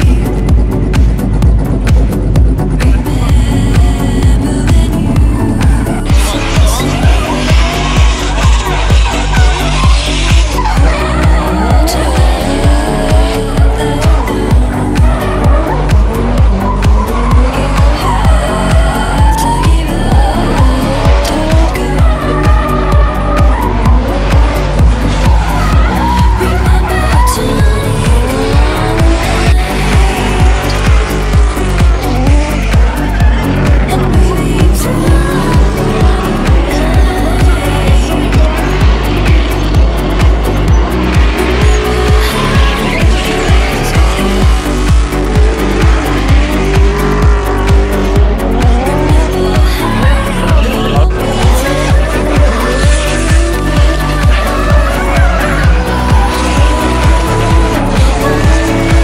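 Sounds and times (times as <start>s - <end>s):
car engines revving: 0.0s - 59.0s
music with steady beat: 0.0s - 59.0s
tyres squealing: 5.5s - 59.0s.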